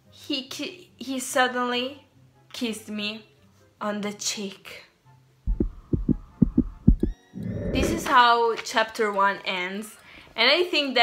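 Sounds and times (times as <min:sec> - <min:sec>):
soft dull low thumps: 0:05.5 - 0:08.2.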